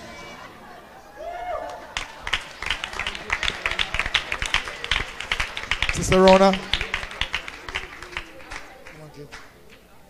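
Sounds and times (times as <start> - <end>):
people clapping: 1.4 - 9.9.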